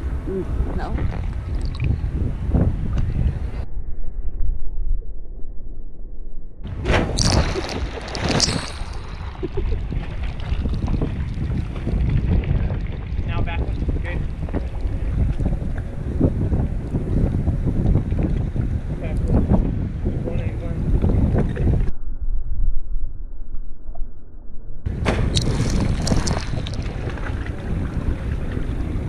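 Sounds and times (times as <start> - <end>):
wind on microphone: 0.0 - 4.7, 6.7 - 21.9, 24.9 - 29.0
sea water sloshing and splashing: 6.8 - 15.9, 25.1 - 29.0.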